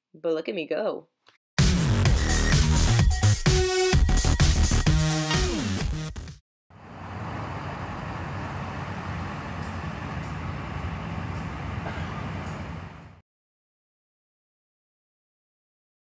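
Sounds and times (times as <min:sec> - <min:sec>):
electronic dance music: 0:01.6 - 0:06.1
distant road traffic rumble: 0:06.7 - 0:13.2.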